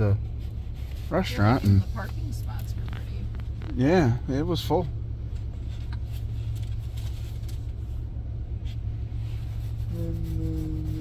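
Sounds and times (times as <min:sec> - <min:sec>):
engine idling low hum: 0:00.0 - 0:11.0.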